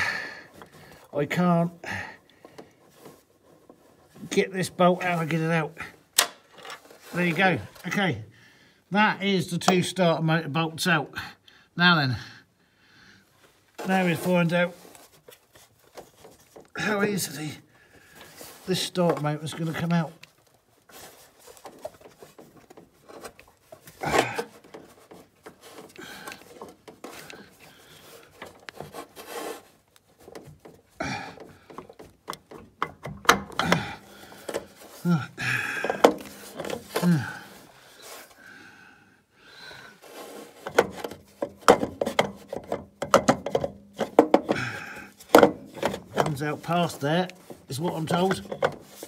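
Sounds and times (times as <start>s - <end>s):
metal parts knocking and scraping: 40.2s - 49.0s.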